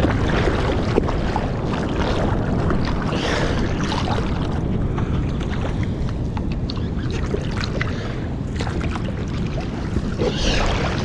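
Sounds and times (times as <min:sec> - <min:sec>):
water rushing and splashing: 0:00.0 - 0:11.0
wind rumbling on microphone: 0:00.0 - 0:11.0.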